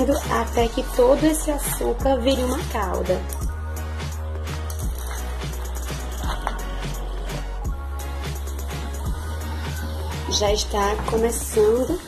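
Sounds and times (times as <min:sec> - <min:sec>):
music with steady beat and bass: 0:00.0 - 0:12.0.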